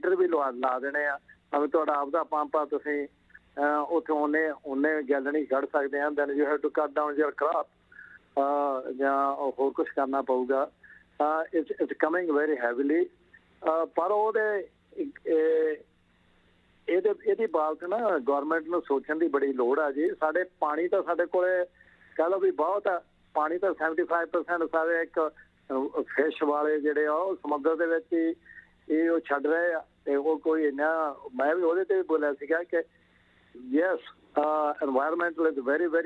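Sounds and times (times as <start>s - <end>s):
man speaking over telephone: 0.0s - 15.8s, 16.9s - 32.8s, 33.6s - 36.0s.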